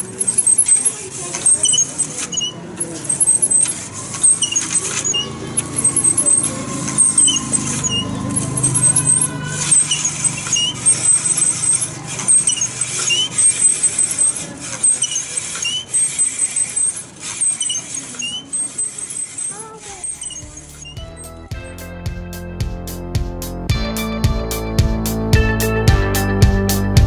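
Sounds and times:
steel scraping on grinding wheel: 0.0s - 21.5s
grinding rig squeaking chirps: 0.0s - 21.7s.

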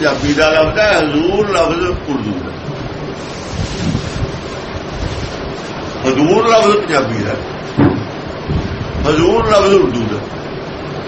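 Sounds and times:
steady rushing background noise: 0.0s - 11.0s.

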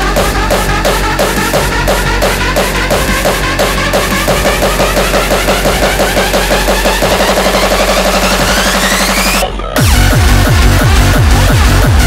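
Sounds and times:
hardcore electronic dance music: 0.0s - 12.0s
rising synth sweep: 0.0s - 12.0s.

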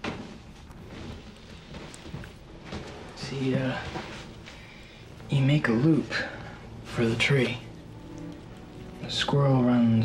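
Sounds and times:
soft rustling: 0.0s - 10.0s.

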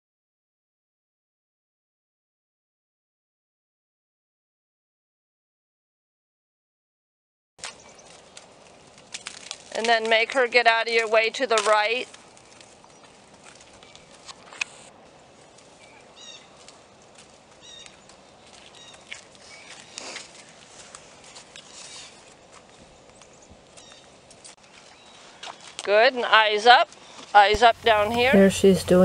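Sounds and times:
footsteps on muddy ground: 7.6s - 25.9s
hooves on muddy ground: 7.6s - 29.0s
bird chirps: 15.8s - 16.6s, 17.6s - 18.1s, 18.7s - 20.0s.

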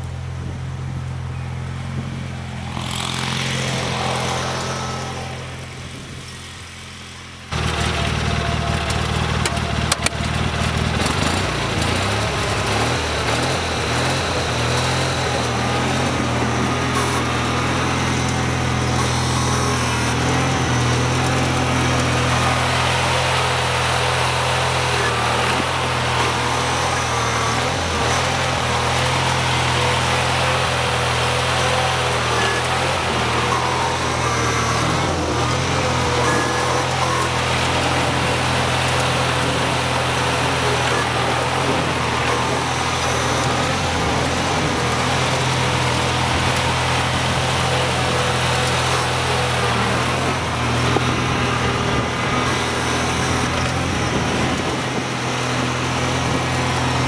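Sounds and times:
garden tractor engine running: 0.0s - 57.0s
plow blade pushing snow: 0.0s - 57.0s.

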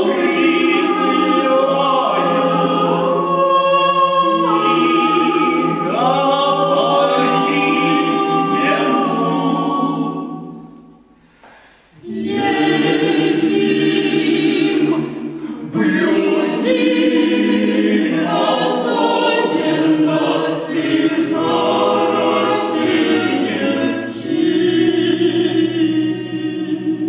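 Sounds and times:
choir singing a cappella: 0.0s - 27.0s.

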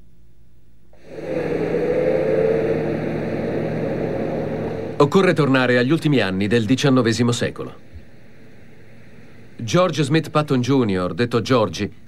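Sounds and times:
car engine and tyre noise: 1.0s - 6.0s.

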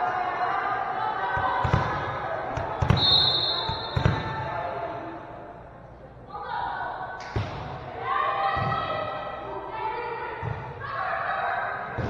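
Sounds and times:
murmur of crowd voices: 0.0s - 12.0s
volleyball bouncing on wooden floor: 2.6s - 3.0s, 3.6s - 4.4s
referee's whistle: 2.9s - 4.2s.

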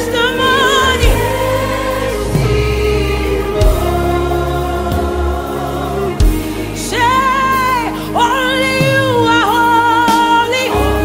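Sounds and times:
gospel worship music: 0.0s - 11.0s.

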